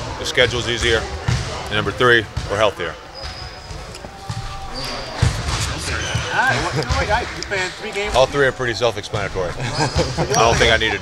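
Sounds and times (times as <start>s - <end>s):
basketballs dribbling on court: 0.4s - 1.6s, 2.2s - 7.4s.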